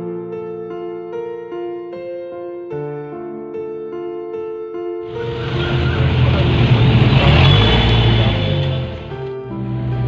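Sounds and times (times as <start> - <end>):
soft piano music: 0.0 - 10.0
loud rushing noise: 5.1 - 9.2
car engine revving: 5.1 - 9.3.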